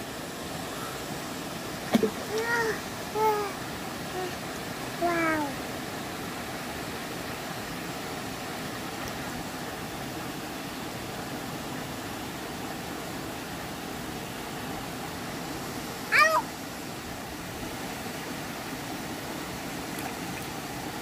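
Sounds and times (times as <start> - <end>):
small waterfall: 0.0 - 21.0
stream water over stones: 0.0 - 21.0
toddler crying out: 2.3 - 3.6, 16.1 - 16.5.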